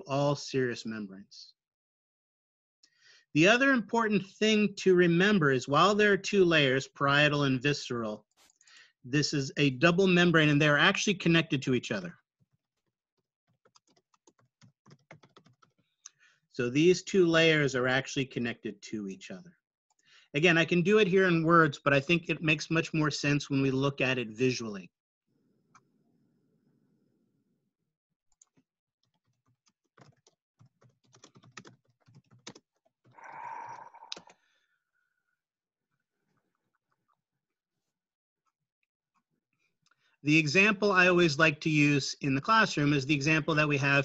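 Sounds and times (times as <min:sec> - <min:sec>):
keyboard typing: 0:13.5 - 0:15.9, 0:28.3 - 0:33.2, 0:34.1 - 0:34.4.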